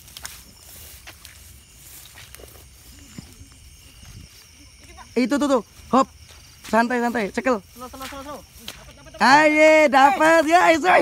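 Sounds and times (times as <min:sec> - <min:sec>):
night insects chirring: 0:00.0 - 0:11.0
rustling through tall grass: 0:00.0 - 0:11.0.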